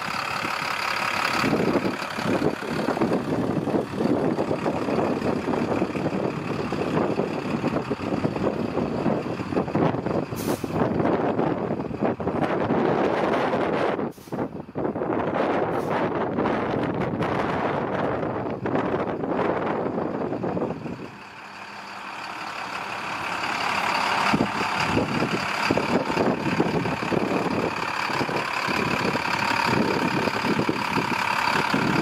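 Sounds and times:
bus engine idling: 0.0s - 32.0s
wind buffeting microphone: 0.0s - 32.0s.

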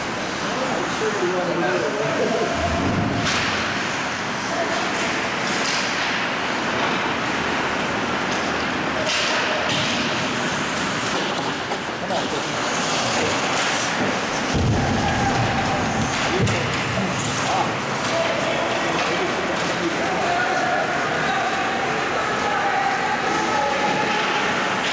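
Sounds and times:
ice hockey play noise: 0.0s - 24.9s.

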